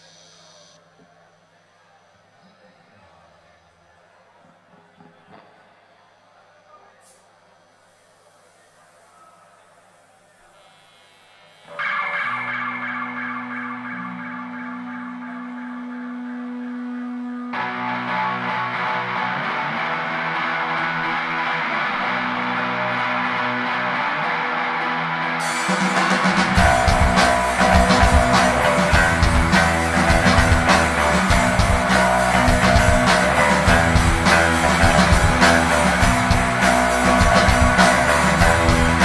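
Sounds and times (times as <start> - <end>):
effects-laden electric guitars: 10.7 - 39.0
drums: 17.3 - 39.0.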